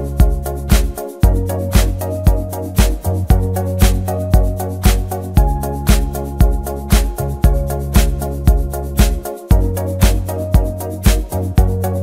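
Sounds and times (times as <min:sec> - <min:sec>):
electronic beat music: 0:00.0 - 0:12.0.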